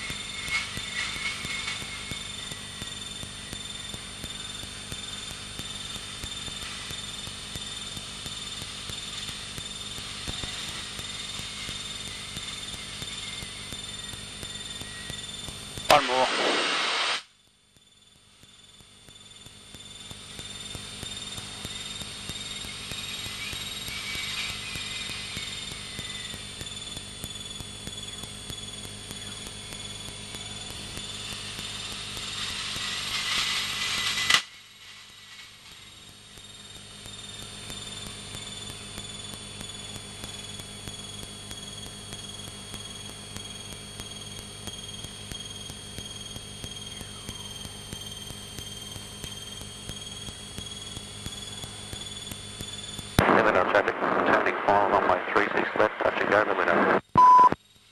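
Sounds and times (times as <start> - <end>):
light aircraft engine and propeller: 0.0 - 16.3, 18.1 - 56.9
steady high whine: 0.0 - 57.9.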